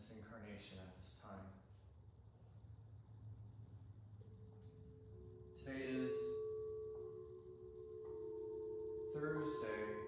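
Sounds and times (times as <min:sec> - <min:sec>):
singing bowls ringing: 0:04.2 - 0:10.0.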